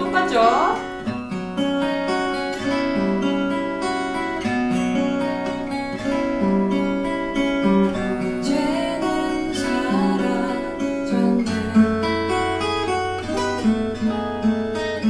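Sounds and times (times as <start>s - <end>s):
acoustic guitar chords: 0.0s - 15.0s.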